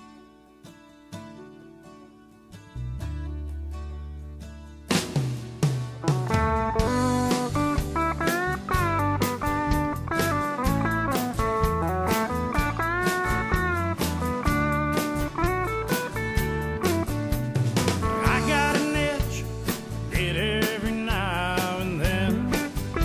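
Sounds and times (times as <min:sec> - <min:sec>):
drum beat: 0:04.9 - 0:23.0
lead guitar melody: 0:05.9 - 0:23.0.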